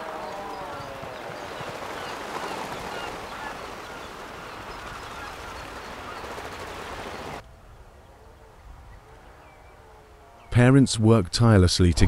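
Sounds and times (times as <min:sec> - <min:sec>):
seabirds calling: 0:00.0 - 0:10.8.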